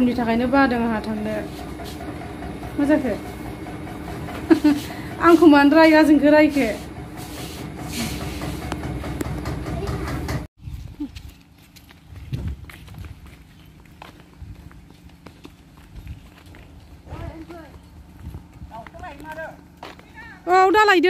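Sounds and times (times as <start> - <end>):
footsteps in sandals on dirt: 10.6 - 20.5.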